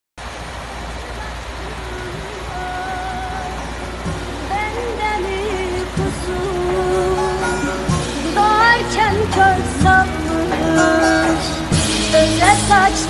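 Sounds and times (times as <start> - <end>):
music with wavering melody: 2.6 - 13.0.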